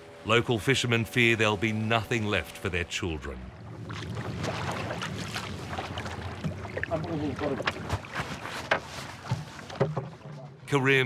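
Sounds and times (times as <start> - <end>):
low steady engine hum: 0.0 - 11.0
water noise: 0.0 - 11.0
wind: 0.0 - 11.0
knocks on wooden hull: 6.3 - 10.5.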